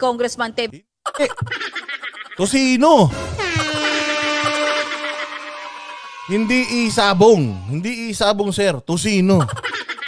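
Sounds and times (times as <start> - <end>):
buzzy horn-like tone: 3.0 - 7.7.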